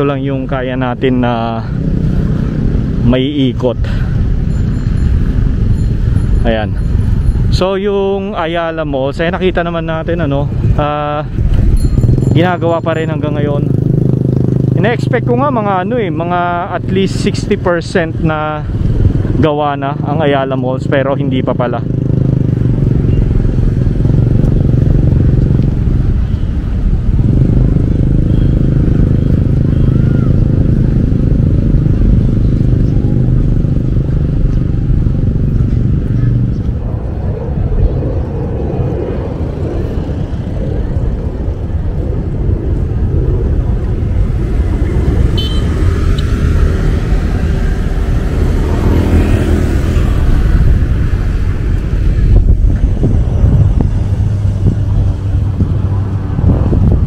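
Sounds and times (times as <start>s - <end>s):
wind and road noise: 0.0s - 57.0s
motorcycle engine running: 11.4s - 17.8s, 18.6s - 37.1s, 44.1s - 57.0s.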